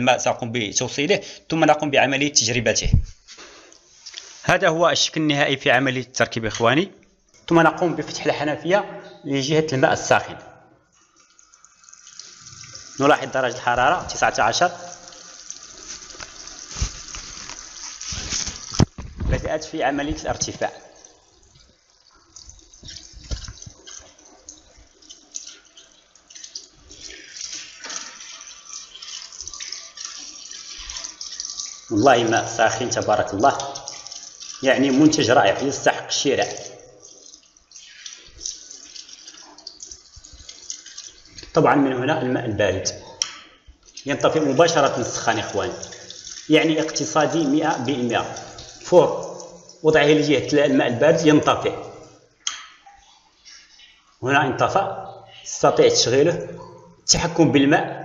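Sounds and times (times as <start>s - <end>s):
water running from faucet into sink: 10.9s - 42.0s, 43.8s - 57.2s.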